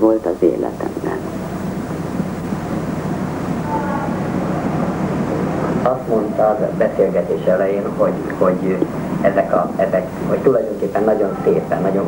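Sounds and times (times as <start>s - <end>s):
low background rumble: 0.0s - 12.0s
man speaking: 5.8s - 12.0s.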